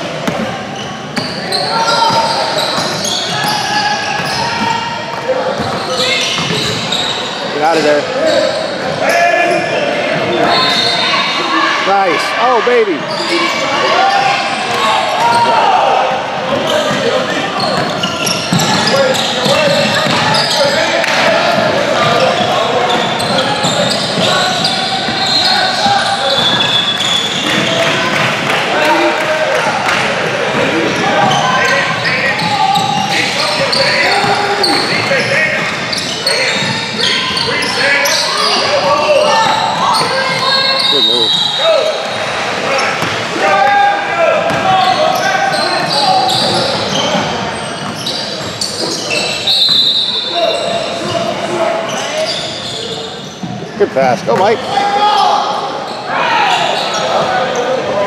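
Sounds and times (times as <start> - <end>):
spectators chattering: 0.0 - 58.0
basketball bouncing on court: 0.2 - 0.5, 4.2 - 6.9, 17.7 - 20.4, 44.5 - 44.7.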